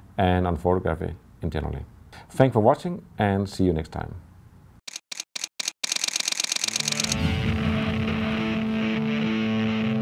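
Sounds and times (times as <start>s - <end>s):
camera shutter clicks: 4.9s - 7.2s
music with held tones: 7.2s - 10.0s.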